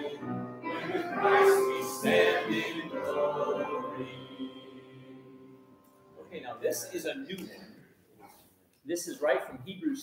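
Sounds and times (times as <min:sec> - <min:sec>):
choir holding a chord: 0:00.0 - 0:06.2.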